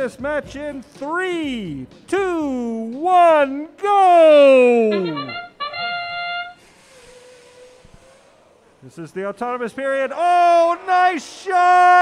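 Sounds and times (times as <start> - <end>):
brass fanfare note: 4.8 - 6.7.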